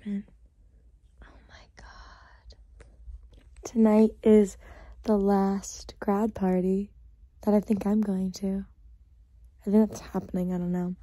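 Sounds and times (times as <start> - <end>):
person whispering: 1.2 - 2.6.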